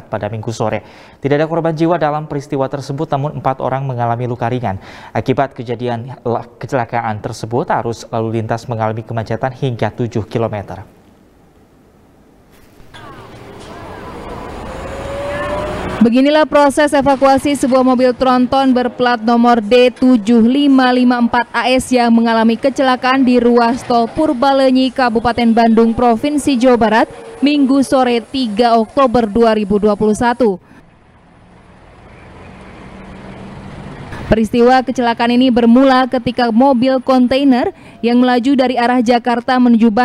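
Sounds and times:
engine and road rumble: 12.4 - 38.9
faint rising tone: 12.8 - 16.2.

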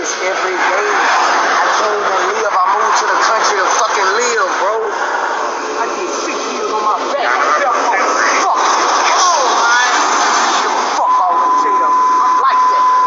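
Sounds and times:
indistinct talking: 0.0 - 13.0
roadside traffic noise: 0.0 - 13.0.

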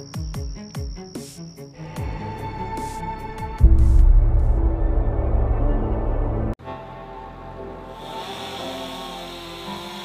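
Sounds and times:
background music with sustained chords: 1.8 - 10.0.

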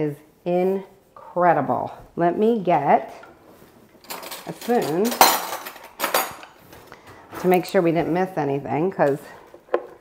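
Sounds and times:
metal cutlery clinking: 4.0 - 6.6.

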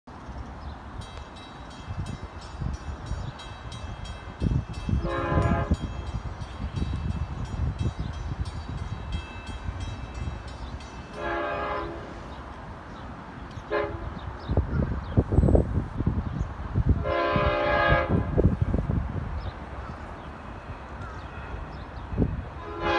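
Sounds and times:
crossing bell dinging rapidly: 1.0 - 12.4
diesel train horn blasts: 4.9 - 6.0, 11.1 - 12.4, 13.6 - 14.3, 17.0 - 18.8, 20.8 - 22.9.

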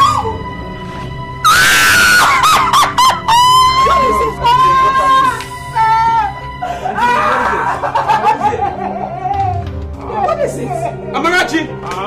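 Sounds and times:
background music: 0.0 - 12.0
woman screaming: 1.4 - 7.8.

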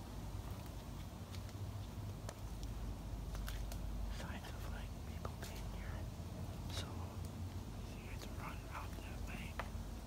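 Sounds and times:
person whispering: 4.1 - 6.1, 6.7 - 9.6.

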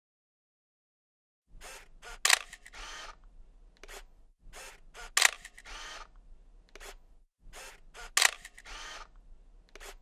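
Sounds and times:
camera rasping wind-on: 1.6 - 3.2, 3.8 - 10.0
camera shutter click: 1.7 - 3.2, 3.8 - 6.1, 7.6 - 9.1, 9.7 - 10.0.

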